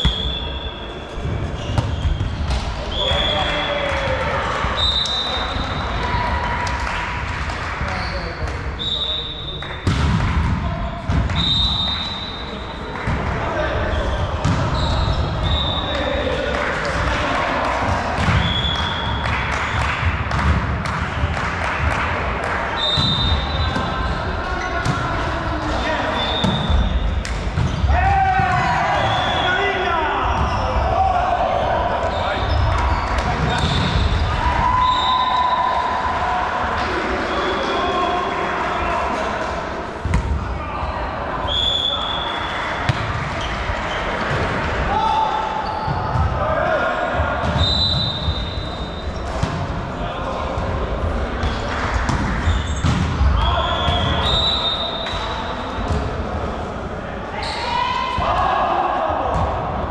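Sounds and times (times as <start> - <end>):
sneakers squeaking on court: 0.0 - 3.4, 32.0 - 34.2, 45.6 - 46.3, 52.4 - 55.1
volleyball struck and thudding: 9.8 - 11.4.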